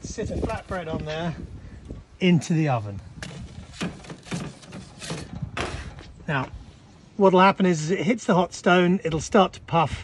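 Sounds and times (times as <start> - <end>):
metal peel scraping and knocking: 3.2 - 6.2.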